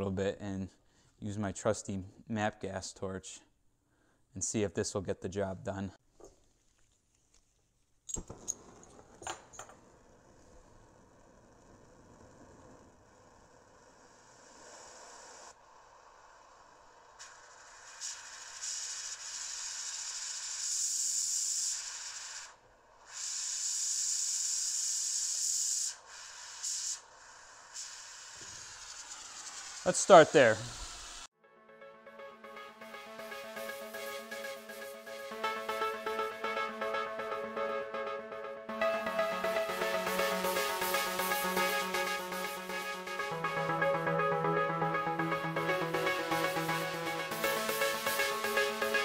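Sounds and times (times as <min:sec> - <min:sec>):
gas torch hissing: 0:10.0 - 0:31.3.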